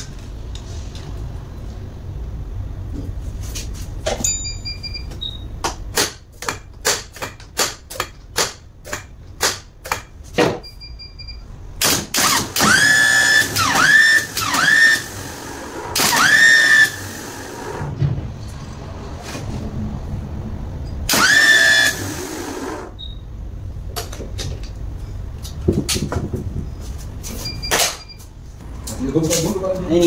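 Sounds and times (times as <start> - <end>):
starter motor whining: 12.2 - 17.9, 21.1 - 23.0.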